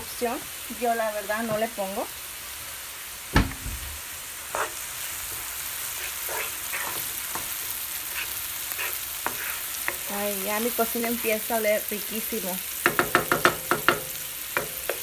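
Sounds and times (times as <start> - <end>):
onion sizzling in oil: 0.0 - 15.0
loud knock: 3.4 - 4.0
wooden spoon scraping and stirring: 4.5 - 11.4.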